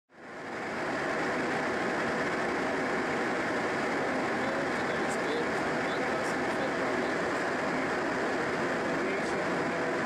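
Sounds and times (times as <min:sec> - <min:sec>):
rushing airflow in cockpit: 0:00.2 - 0:10.0.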